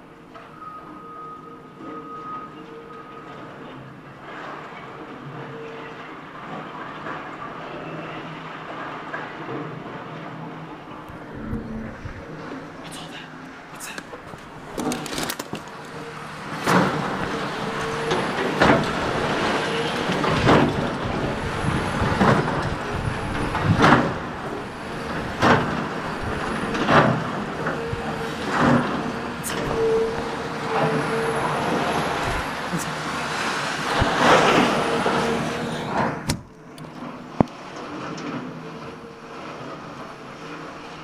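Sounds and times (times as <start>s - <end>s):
diesel engine hum: 10.7s - 41.0s
debris crashing and crunching: 14.2s - 27.5s.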